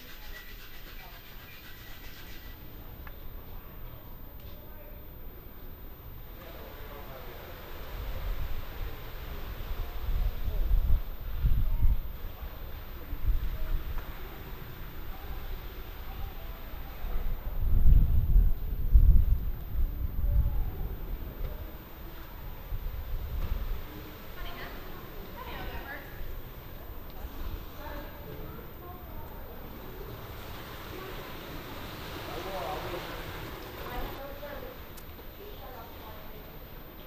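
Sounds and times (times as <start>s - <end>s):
faint murmured conversation: 0.0s - 37.0s
wind buffeting microphone: 7.5s - 34.6s.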